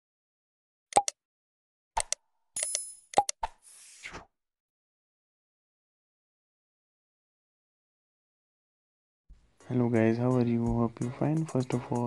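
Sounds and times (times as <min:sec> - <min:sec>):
mouse clicks: 0:01.0 - 0:01.2.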